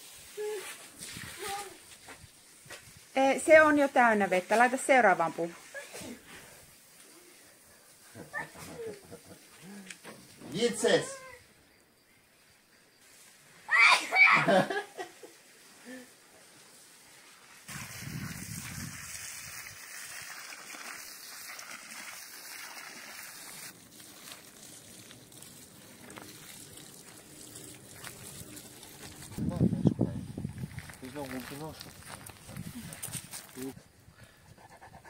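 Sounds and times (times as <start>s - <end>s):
water from hose splashing on soil: 0.0s - 9.4s, 16.6s - 29.7s, 30.4s - 33.8s.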